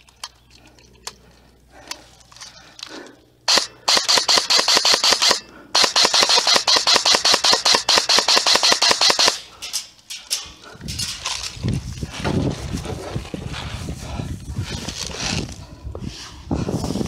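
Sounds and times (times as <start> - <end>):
airsoft rifle firing full auto: 3.5 - 9.5.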